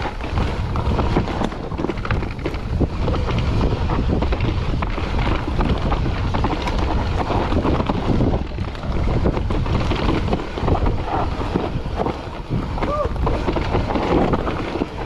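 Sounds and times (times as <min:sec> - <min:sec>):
bike rattling over bumps: 0:00.0 - 0:15.0
tyres crunching on dirt: 0:00.0 - 0:15.0
wind buffeting microphone: 0:00.0 - 0:15.0.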